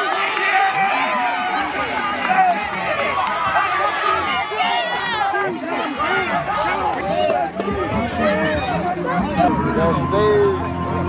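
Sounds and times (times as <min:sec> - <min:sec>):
boys shouting and talking: 0:00.0 - 0:10.8.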